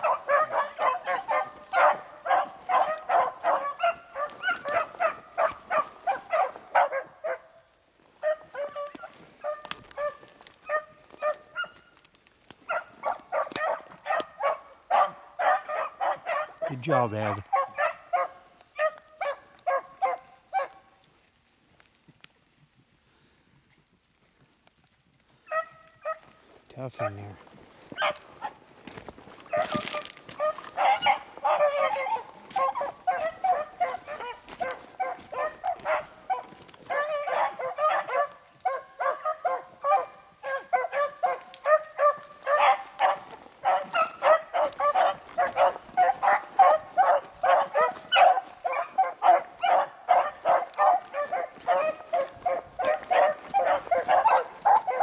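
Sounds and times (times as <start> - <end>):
hounds baying and barking: 0.0 - 23.3, 25.2 - 55.0.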